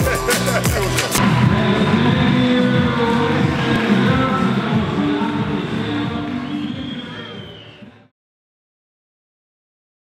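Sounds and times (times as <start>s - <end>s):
country song chords: 0.0s - 7.1s
crowd noise: 0.0s - 8.1s.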